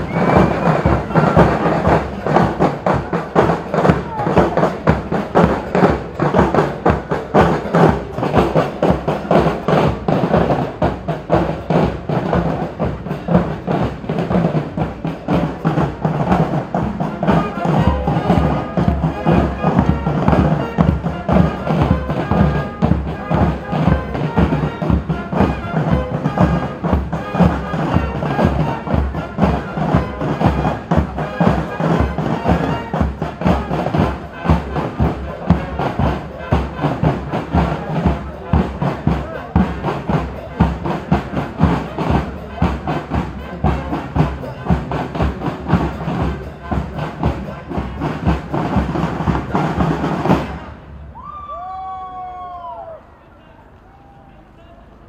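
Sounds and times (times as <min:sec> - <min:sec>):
marching drum corps playing: 0:00.0 - 0:51.1.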